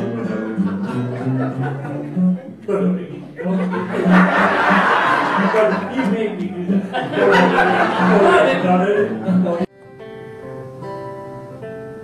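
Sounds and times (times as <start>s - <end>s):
acoustic string instrument strumming: 0.0s - 12.0s.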